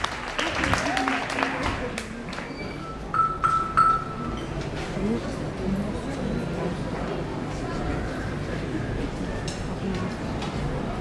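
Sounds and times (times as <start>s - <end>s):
high metal percussion strikes: 3.1s - 4.3s.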